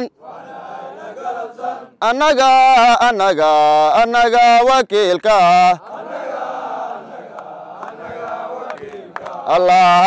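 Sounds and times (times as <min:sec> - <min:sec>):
men chanting: 0:00.0 - 0:03.0, 0:05.4 - 0:10.0.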